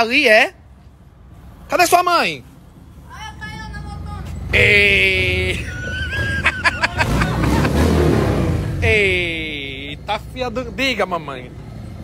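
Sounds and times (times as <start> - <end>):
voices: 1.7 - 11.7.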